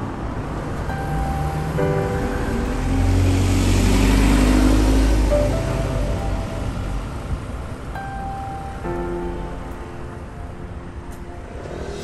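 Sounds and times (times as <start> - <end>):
motor vehicle passing: 0.0 - 8.1
background music: 0.0 - 12.0.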